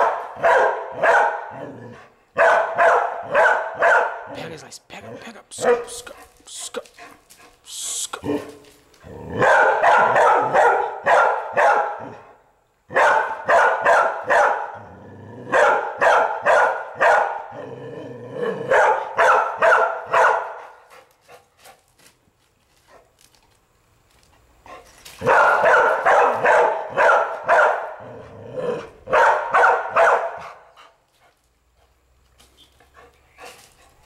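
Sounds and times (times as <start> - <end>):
dog barking: 0.0 - 1.8, 2.4 - 4.4, 5.6 - 6.3, 9.4 - 12.2, 12.9 - 14.8, 15.4 - 17.6, 18.5 - 20.8, 25.2 - 28.1, 29.0 - 30.8.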